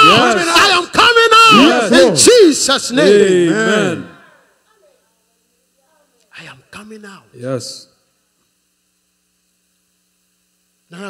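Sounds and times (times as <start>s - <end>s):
man talking: 0.0s - 4.2s
faint mains hum: 0.0s - 11.0s.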